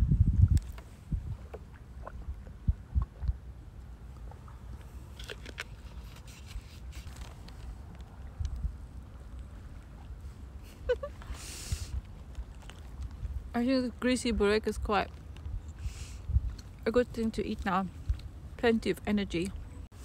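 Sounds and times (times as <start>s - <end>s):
wind buffeting microphone: 0.0s - 3.5s, 14.2s - 18.6s.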